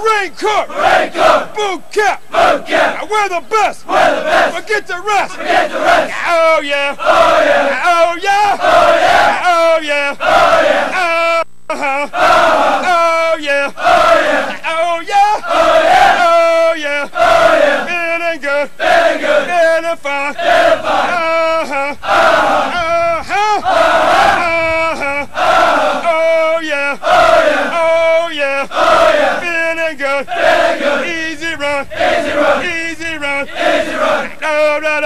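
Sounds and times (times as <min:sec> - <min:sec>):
men shouting a cadence chant: 0:00.0 - 0:11.0, 0:12.0 - 0:35.0.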